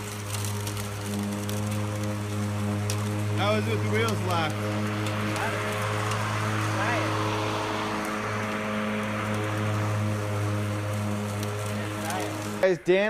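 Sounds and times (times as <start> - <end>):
electric lawn mower running: 0.0 - 13.0.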